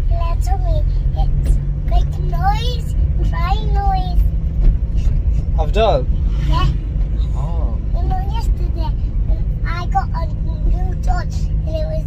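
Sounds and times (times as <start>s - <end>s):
child talking and laughing: 0.0s - 4.4s, 6.4s - 12.0s
car driving rumble inside cabin: 0.0s - 12.0s.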